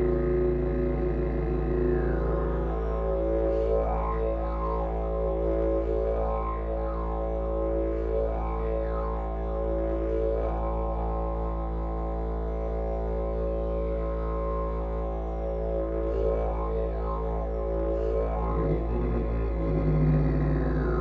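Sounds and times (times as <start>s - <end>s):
didgeridoo drone: 0.0s - 21.0s.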